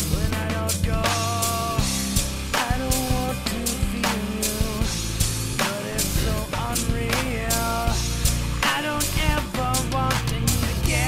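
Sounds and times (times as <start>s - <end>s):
band recording with drums: 0.0s - 11.0s
looped percussion sample: 0.0s - 11.0s
person singing: 0.0s - 11.0s.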